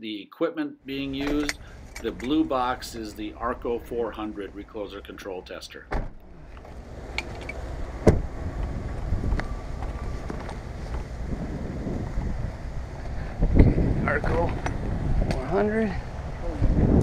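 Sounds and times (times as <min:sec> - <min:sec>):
thump: 0:05.9 - 0:06.2, 0:08.0 - 0:08.3
wind buffeting microphone: 0:06.6 - 0:17.0.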